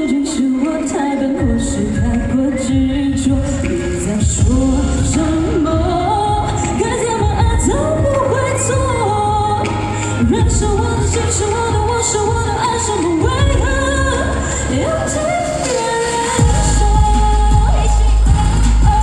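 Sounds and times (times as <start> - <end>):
woman singing into microphone: 0.0 - 19.0.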